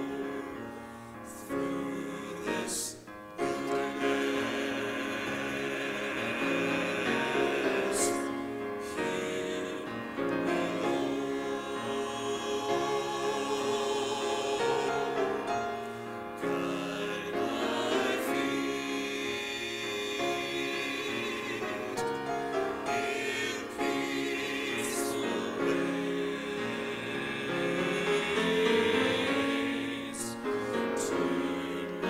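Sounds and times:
choir singing sustained chords: 0:00.0 - 0:32.0.

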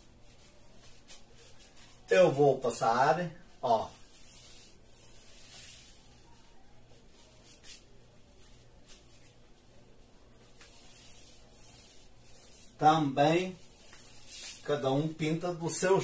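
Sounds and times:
paintbrush swishing on drywall: 0:00.0 - 0:16.0.

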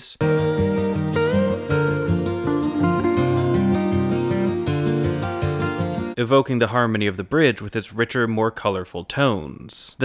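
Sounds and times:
lead guitar melody: 0:00.2 - 0:06.2
plucked guitar notes: 0:00.2 - 0:06.2.

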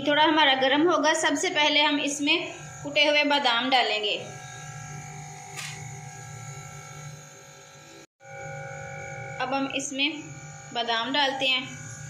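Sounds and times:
steady electric hum: 0:00.0 - 0:12.0.

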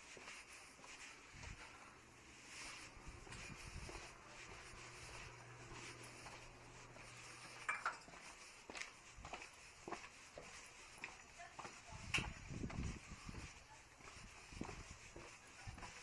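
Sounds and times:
footsteps on concrete: 0:00.0 - 0:16.0.

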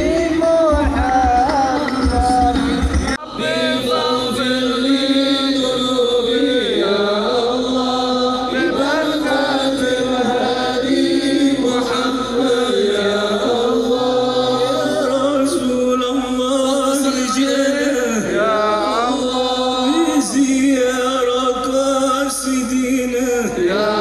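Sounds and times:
voices singing devotional song: 0:00.0 - 0:24.0.

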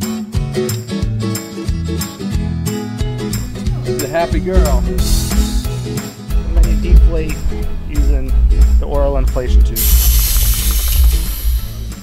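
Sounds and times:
background music: 0:00.0 - 0:12.0
air hissing from inflation tube: 0:09.8 - 0:12.0.

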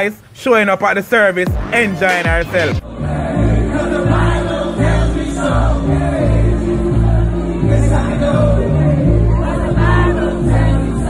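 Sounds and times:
deep bass held notes: 0:01.5 - 0:11.0
gospel choir singing: 0:02.7 - 0:11.0.

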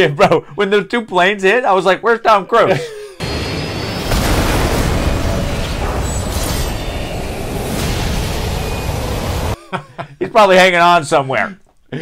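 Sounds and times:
heavy low rumble: 0:03.2 - 0:09.6.

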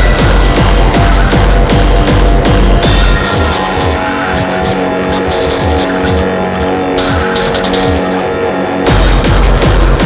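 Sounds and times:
hardcore electronic music: 0:00.0 - 0:10.0.

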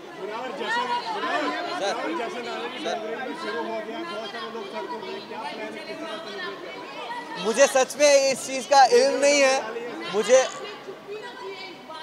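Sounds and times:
babble of overlapping voices: 0:00.0 - 0:12.0.

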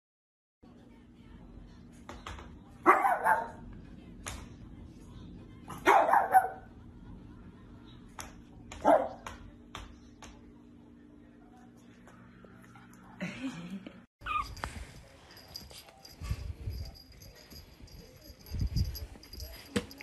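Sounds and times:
small dog barking: 0:02.8 - 0:03.6, 0:05.7 - 0:06.7, 0:08.8 - 0:09.2.

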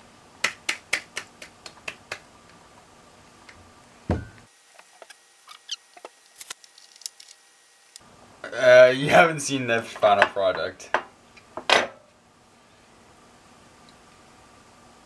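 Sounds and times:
light squeaks: 0:04.9 - 0:06.1.

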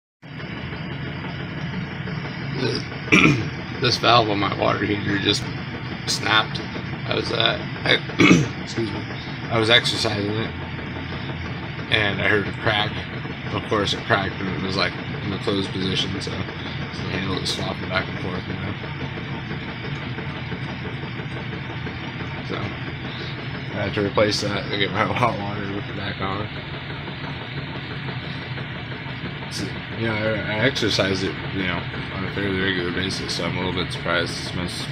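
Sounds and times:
low hum: 0:00.2 - 0:34.9.

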